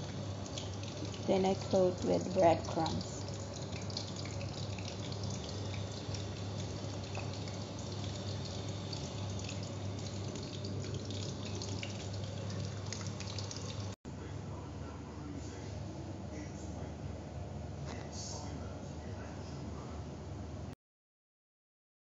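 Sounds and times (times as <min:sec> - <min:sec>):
hot oil sizzling: 0:00.0 - 0:14.0.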